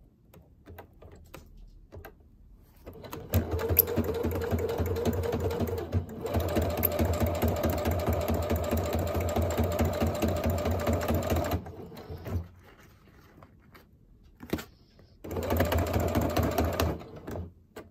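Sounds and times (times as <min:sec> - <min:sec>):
electric sewing machine stitching: 0:03.0 - 0:12.4, 0:15.3 - 0:17.4.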